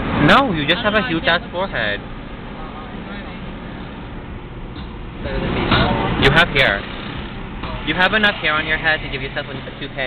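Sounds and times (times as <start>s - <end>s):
car interior road and engine noise: 0.0s - 10.0s.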